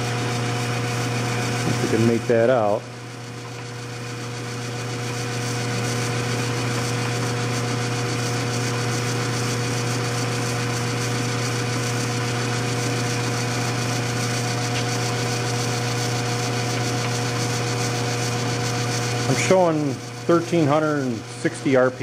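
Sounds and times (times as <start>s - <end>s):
motor humming with high whine: 0.0s - 22.0s.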